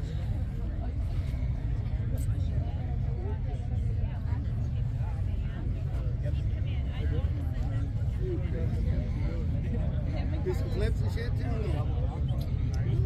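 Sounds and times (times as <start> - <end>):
people talking indistinctly: 0.0 - 13.0
steady low rumble: 0.0 - 13.0.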